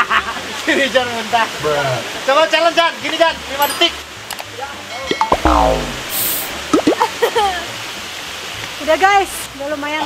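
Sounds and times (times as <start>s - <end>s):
falling water rushing: 5.2s - 7.6s.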